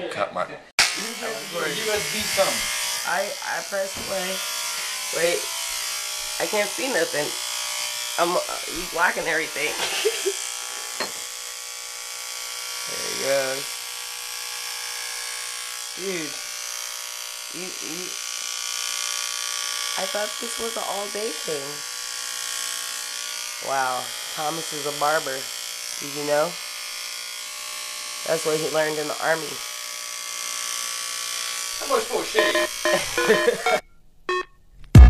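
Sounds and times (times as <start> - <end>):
electric hair clippers buzzing: 0.8 - 33.8.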